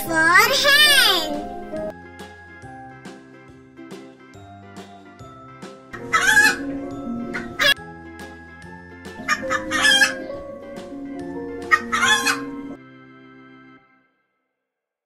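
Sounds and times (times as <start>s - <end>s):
soft music with held notes: 0.0s - 14.2s
chickens calling: 6.0s - 7.8s, 9.2s - 10.4s, 11.6s - 12.8s.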